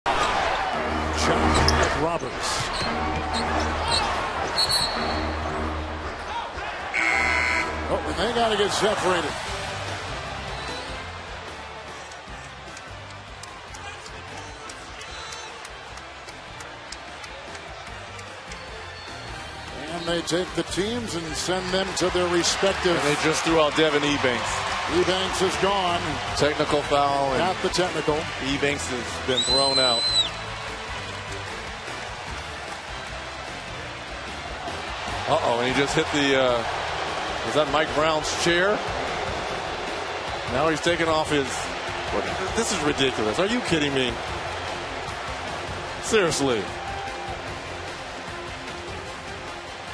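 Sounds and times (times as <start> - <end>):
arena crowd noise: 0.0 - 49.9
referee's whistle: 2.7 - 5.4, 7.0 - 7.8, 10.5 - 11.0, 29.3 - 30.4
arena horn blaring: 6.9 - 7.9.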